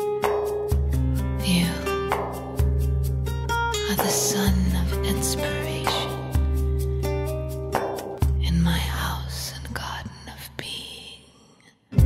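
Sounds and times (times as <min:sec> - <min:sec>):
woman whispering vocal: 0:01.4 - 0:01.9, 0:08.4 - 0:11.6.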